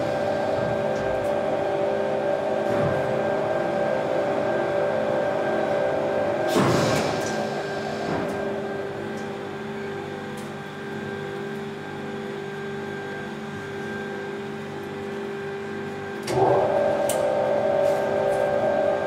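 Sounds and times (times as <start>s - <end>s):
laundry machines humming: 0.0s - 19.0s
louder machine sound: 16.2s - 19.0s.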